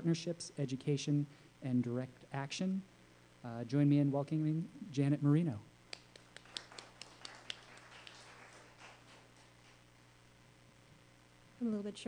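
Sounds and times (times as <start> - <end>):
scattered clapping: 5.9 - 9.8.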